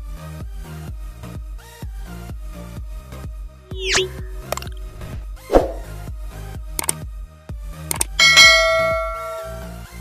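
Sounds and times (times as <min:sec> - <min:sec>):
bell ding: 0:03.8 - 0:04.8, 0:07.9 - 0:09.9.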